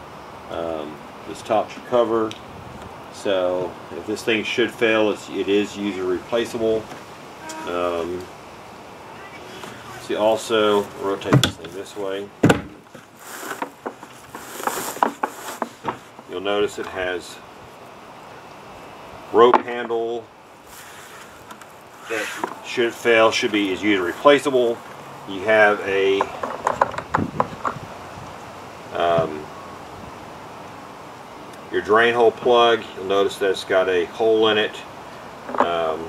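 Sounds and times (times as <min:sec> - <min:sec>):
plastic cooler scraping on grass: 0:10.4 - 0:11.9, 0:13.0 - 0:16.2, 0:20.6 - 0:24.8.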